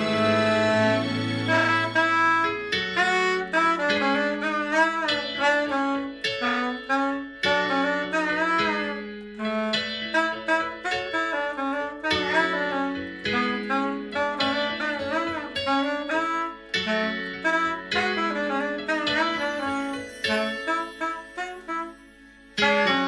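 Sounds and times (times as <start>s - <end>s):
soprano saxophone melody: 0.0s - 23.0s.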